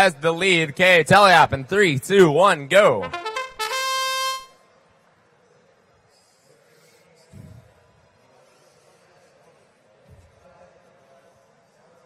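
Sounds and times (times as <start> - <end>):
fanfare of rising notes: 2.8 - 4.5.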